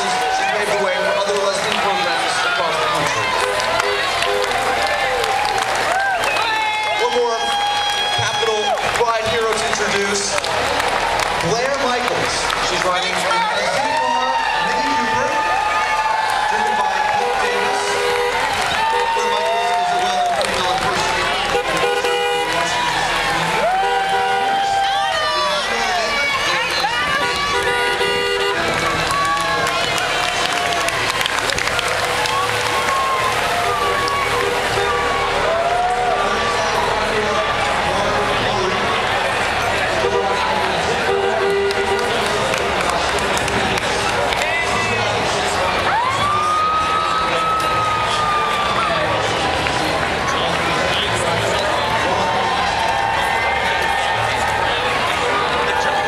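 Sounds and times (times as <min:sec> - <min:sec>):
crowd cheering and shouting: 0:00.0 - 0:56.0
people clapping: 0:00.0 - 0:56.0.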